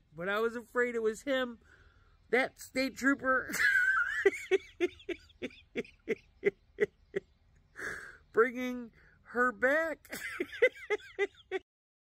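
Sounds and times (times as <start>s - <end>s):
quick breath: 1.6s - 2.2s, 7.8s - 8.3s
man laughing: 3.3s - 8.0s, 10.0s - 11.7s.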